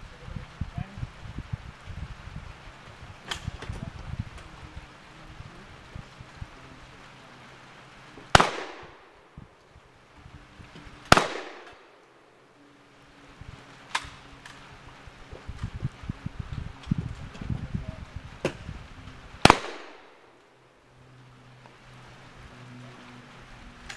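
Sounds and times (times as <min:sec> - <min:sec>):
gunshots with echo: 0:08.3 - 0:09.1, 0:11.1 - 0:12.0, 0:19.4 - 0:20.2.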